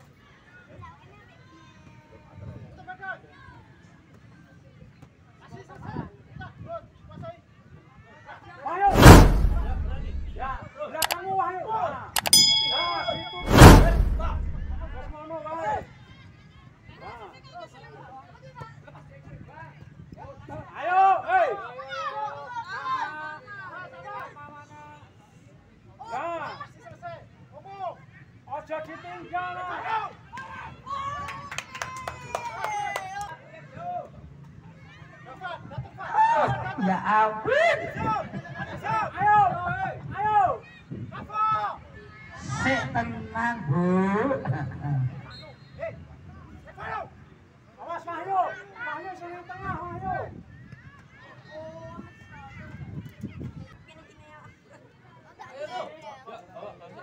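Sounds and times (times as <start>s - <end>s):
loud whoosh: 8.9s - 10.6s, 13.0s - 15.1s
quick mouse clicks: 9.0s - 11.2s
bell ding: 12.2s - 15.1s.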